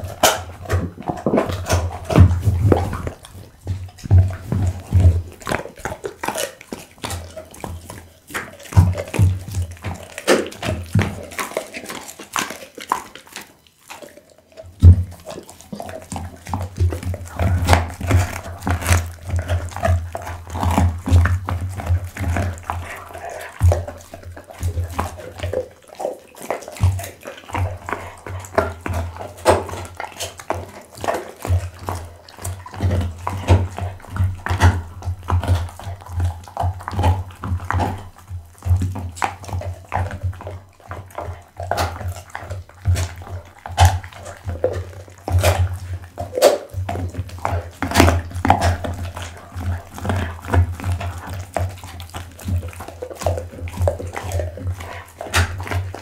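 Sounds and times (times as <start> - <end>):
dog chewing and crunching bone: 0.0 - 56.0.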